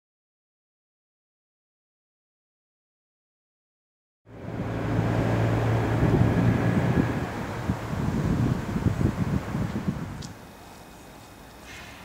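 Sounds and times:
street ambience: 4.3s - 12.0s
vehicle engine running: 4.3s - 12.0s.

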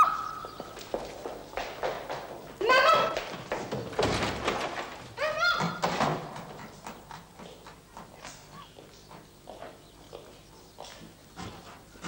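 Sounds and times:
footsteps on wooden floor: 0.0s - 5.1s.

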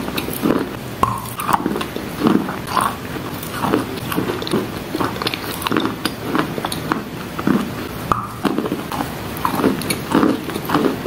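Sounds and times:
wet chalk being chewed: 0.0s - 11.0s.

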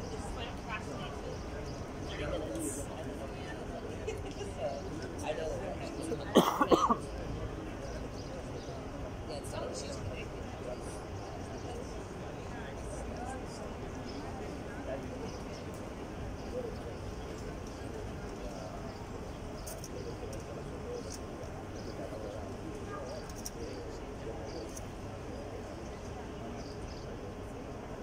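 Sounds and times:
faint background talk: 0.0s - 28.0s
person coughing: 6.4s - 7.0s.

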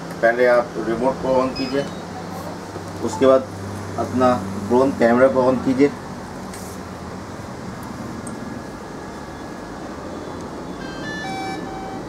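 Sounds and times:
electronic beep chime: 10.7s - 12.0s.

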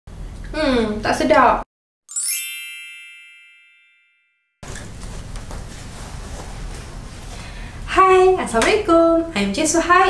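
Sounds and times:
bright ringing chime: 2.1s - 4.6s.

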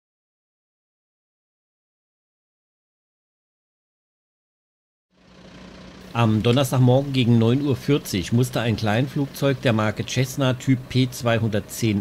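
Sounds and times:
engine idling hum: 5.1s - 12.0s.

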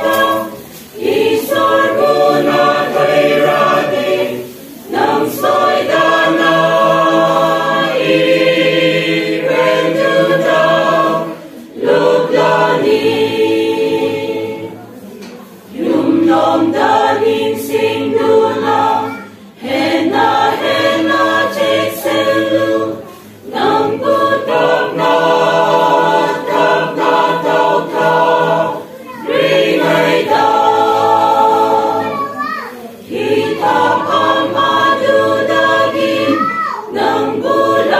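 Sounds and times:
choir singing a hymn: 0.0s - 37.9s.

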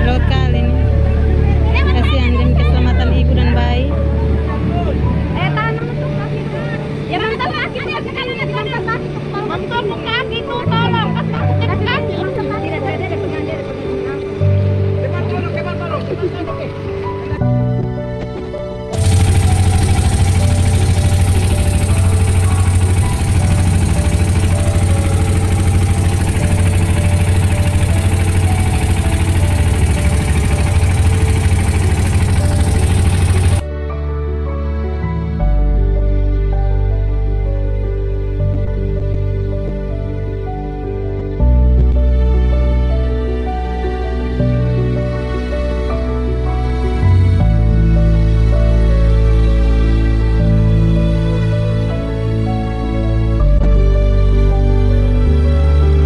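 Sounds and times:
boat engine drone: 0.0s - 33.7s, 35.6s - 56.0s.

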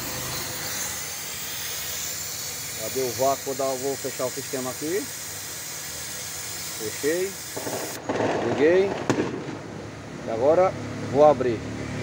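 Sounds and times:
compressed air hissing: 0.0s - 8.1s.

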